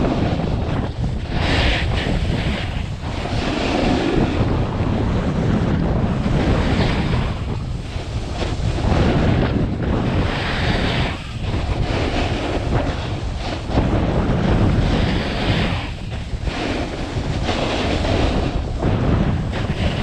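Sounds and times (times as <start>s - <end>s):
skis scraping over snow: 0.0s - 20.0s
wind buffeting microphone: 0.0s - 20.0s.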